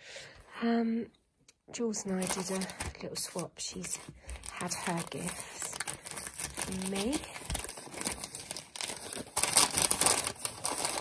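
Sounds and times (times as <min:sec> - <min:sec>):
paper bag crinkling: 0:02.1 - 0:11.0.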